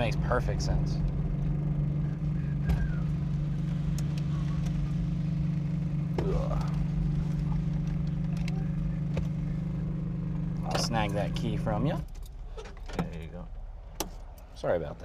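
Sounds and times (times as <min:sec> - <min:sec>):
small engine running steadily: 0:00.0 - 0:12.6.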